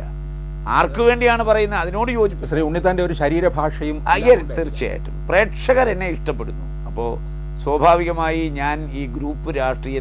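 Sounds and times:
low mains hum: 0:00.0 - 0:10.0
man speaking: 0:00.7 - 0:10.0.

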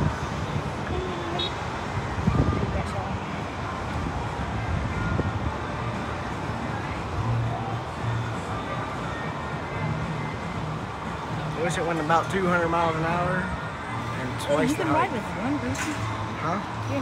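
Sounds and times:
muffled indistinct voices: 0:00.0 - 0:17.0
street traffic: 0:00.0 - 0:17.0
wind: 0:00.0 - 0:17.0.

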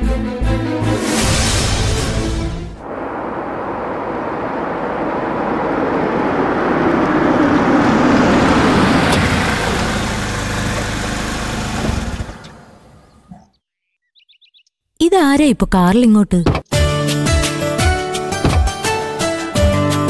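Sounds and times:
car driving past: 0:01.1 - 0:13.0.

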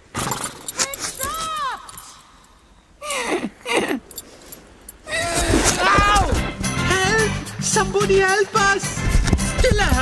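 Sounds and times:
short falling vocal cries: 0:05.0 - 0:06.5
background music with melody: 0:06.3 - 0:10.0.

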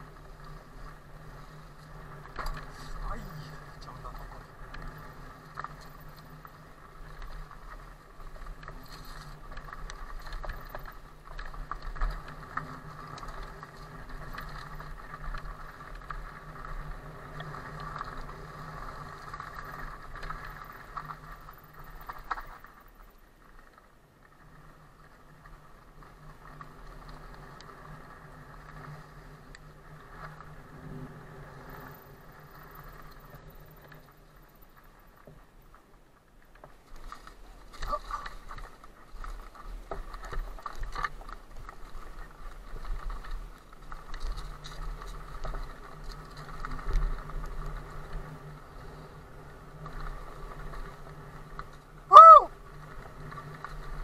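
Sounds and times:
small rattles and knocks: 0:00.0 - 0:18.3, 0:33.0 - 0:49.0
tyre and drivetrain noise: 0:00.0 - 0:54.0.

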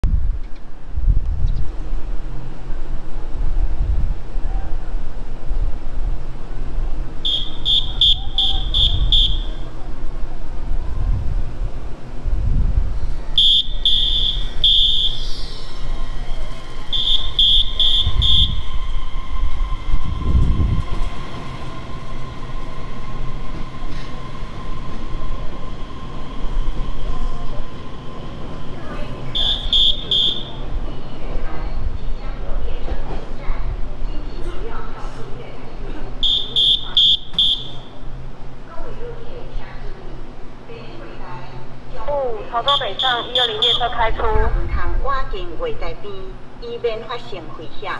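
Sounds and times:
low rumble: 0:14.4 - 0:28.0.

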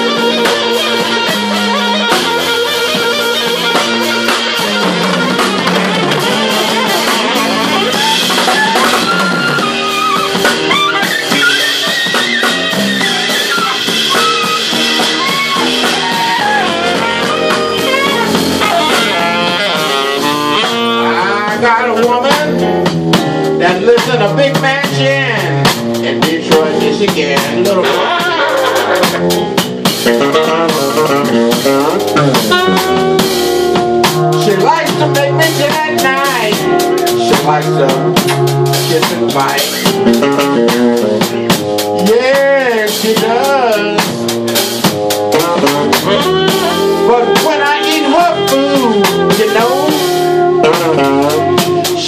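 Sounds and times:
blues band playing: 0:00.0 - 0:52.0
drum kit: 0:00.0 - 0:52.0
fretless electric bass: 0:00.0 - 0:52.0
keyboards: 0:00.0 - 0:52.0.

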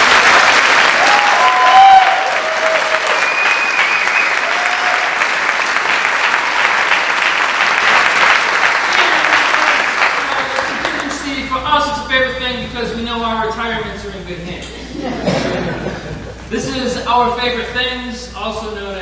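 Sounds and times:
audience cheering: 0:00.0 - 0:11.3
audience applauding: 0:00.0 - 0:11.4.

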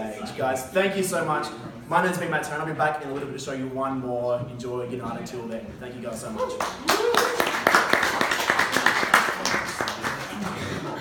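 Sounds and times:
murmur of people talking: 0:00.0 - 0:11.0
audience applause: 0:06.6 - 0:11.0.

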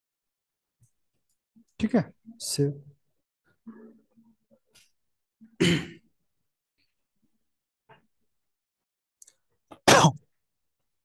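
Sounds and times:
person coughing: 0:05.6 - 0:06.1, 0:09.7 - 0:10.3.

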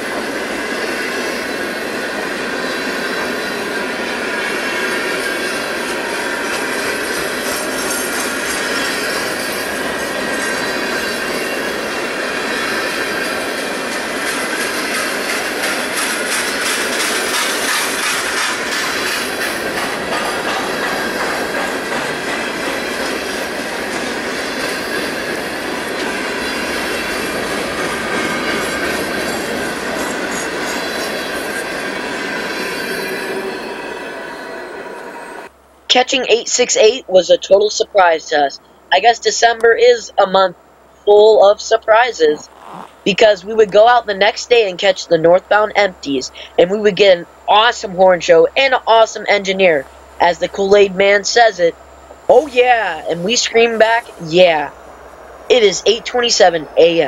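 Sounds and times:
freight train wheels rumbling: 0:00.0 - 0:57.0
clicking over rail joints: 0:13.9 - 0:24.7.

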